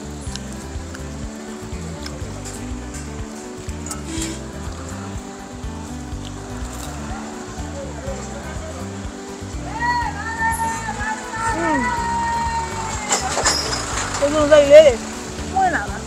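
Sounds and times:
background music with bass line: 0:00.0 - 0:16.0.

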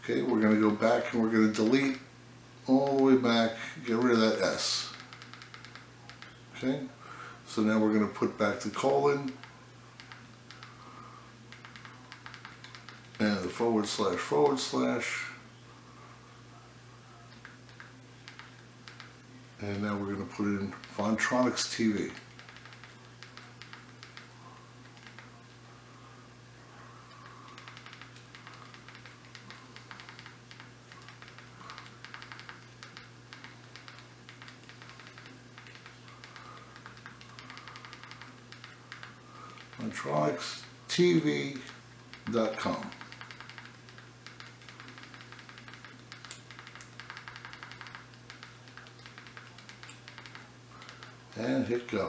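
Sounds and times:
low steady hum: 0:00.0 - 0:52.0
remote buttons clicking: 0:04.9 - 0:06.4, 0:27.1 - 0:39.8, 0:41.6 - 0:51.2.

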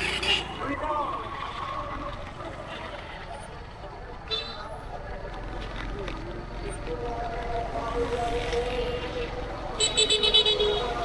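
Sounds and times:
street traffic rumble: 0:00.0 - 0:11.0
people's voices: 0:00.4 - 0:11.0.

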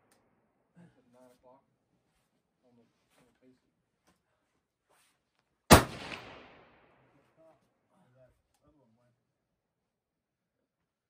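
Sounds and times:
gunshot echo: 0:05.7 - 0:07.0
rifle shot: 0:05.7 - 0:07.0.

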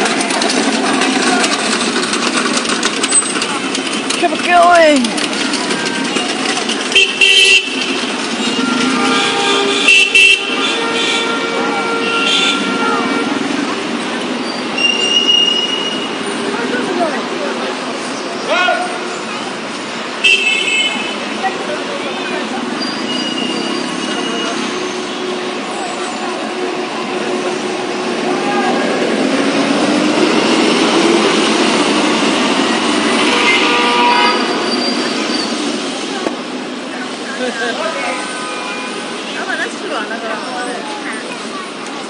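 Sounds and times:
bus passing: 0:00.0 - 0:42.0
street traffic: 0:00.0 - 0:42.0
car horn toot: 0:06.9 - 0:13.4, 0:20.2 - 0:21.3, 0:33.2 - 0:34.9, 0:38.0 - 0:39.0.

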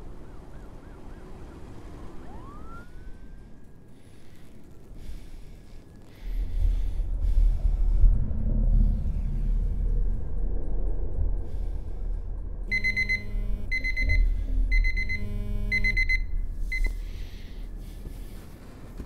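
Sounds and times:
low rumbling drone: 0:05.0 - 0:18.5
electronic alarm beeping: 0:12.7 - 0:17.1.

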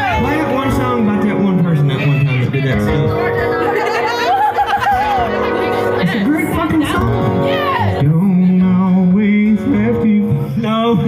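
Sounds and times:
man singing: 0:00.0 - 0:03.2, 0:05.9 - 0:11.0
acoustic guitars: 0:00.0 - 0:11.0.

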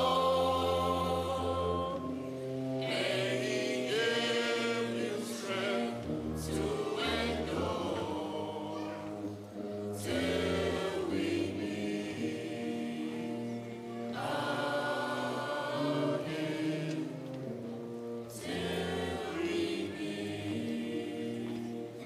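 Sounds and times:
voices singing: 0:00.0 - 0:22.0.

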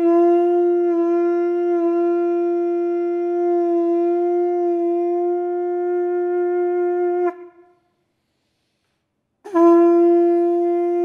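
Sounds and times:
hand-held horn long note: 0:00.0 - 0:08.1, 0:09.4 - 0:11.0.

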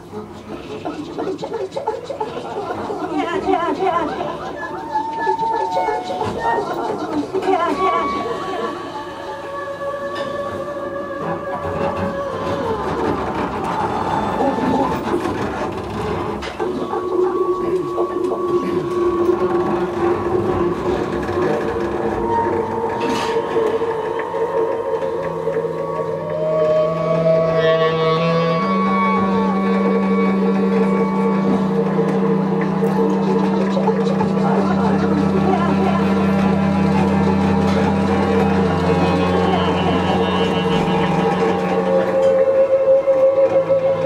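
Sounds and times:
grainy scraping texture: 0:00.1 - 0:44.0
double bass held tones: 0:04.0 - 0:44.0.

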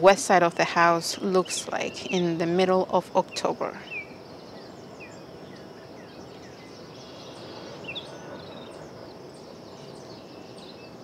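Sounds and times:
small birds chirping: 0:00.0 - 0:11.0
steady background hiss: 0:00.0 - 0:11.0.

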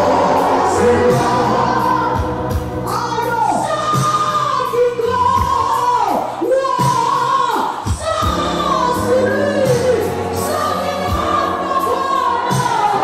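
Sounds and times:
gospel choir singing: 0:00.0 - 0:06.5, 0:07.4 - 0:13.0.

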